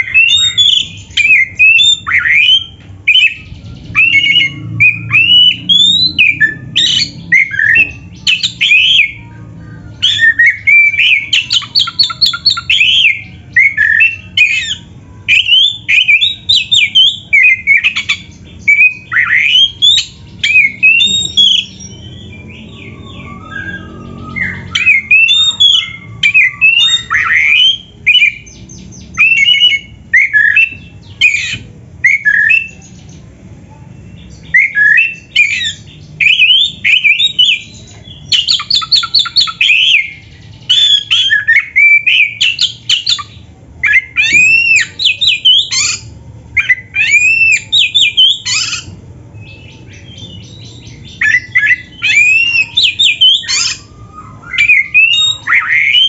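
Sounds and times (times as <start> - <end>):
songbird singing varied song: 0.0 - 33.3, 34.0 - 56.0.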